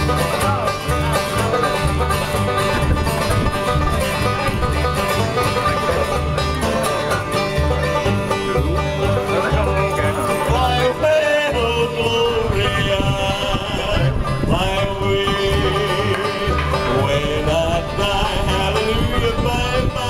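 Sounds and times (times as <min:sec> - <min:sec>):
acoustic guitar strumming: 0:00.0 - 0:20.0
banjo picking: 0:00.0 - 0:20.0
upright bass notes: 0:00.0 - 0:20.0.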